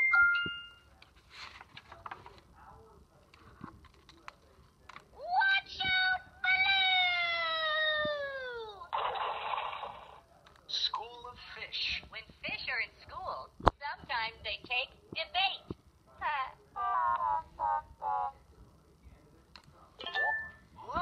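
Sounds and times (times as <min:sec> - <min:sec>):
page turning rustles: 0:01.0 - 0:02.5.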